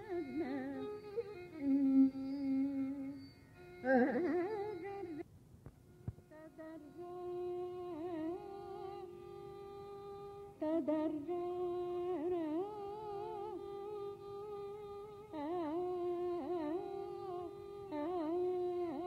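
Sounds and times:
woman singing long ornamented notes: 0.0s - 5.2s, 6.2s - 19.0s.

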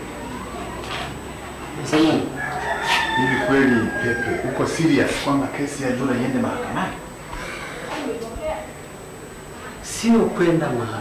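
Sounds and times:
rooster crowing: 2.1s - 5.3s
man talking: 3.2s - 7.0s, 9.8s - 11.0s.

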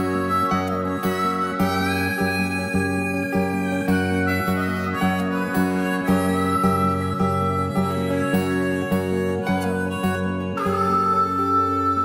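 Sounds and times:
harmonica melody: 0.0s - 12.0s
strummed acoustic guitar: 0.0s - 12.0s.

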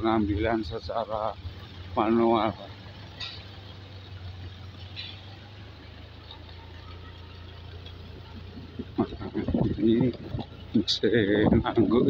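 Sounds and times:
engine droning: 0.0s - 12.0s.

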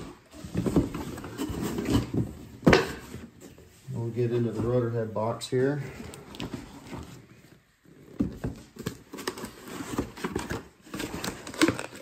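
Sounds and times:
cardboard boxes rustling and scraping: 0.0s - 12.0s.

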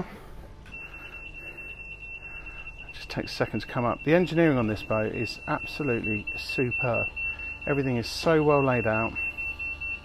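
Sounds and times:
high-pitched warning buzzer: 0.7s - 10.0s.

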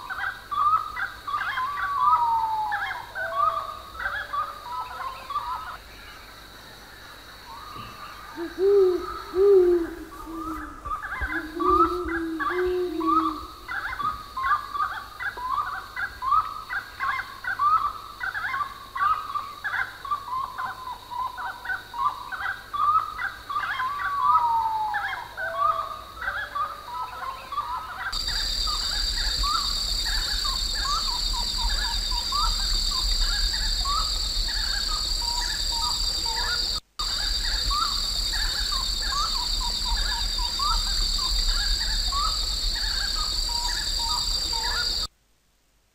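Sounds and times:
bird calling short rising notes: 8.4s - 13.5s.

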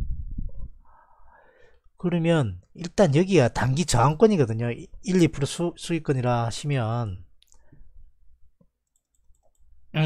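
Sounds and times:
computer mouse clicks: 8.6s - 9.7s.

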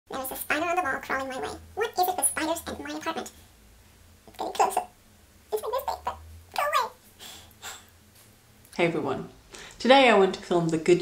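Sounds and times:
woman speaking: 5.5s - 7.0s, 8.8s - 11.0s.

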